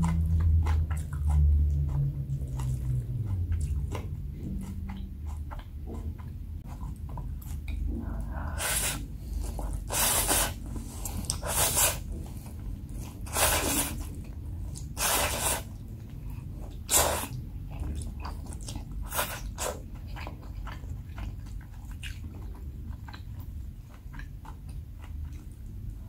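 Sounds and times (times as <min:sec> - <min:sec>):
soft chewing and mouth clicks: 0:00.0 - 0:26.0
wet slurping of noodles: 0:08.5 - 0:09.1, 0:09.8 - 0:10.6, 0:11.3 - 0:12.0, 0:13.3 - 0:14.1, 0:15.0 - 0:15.7.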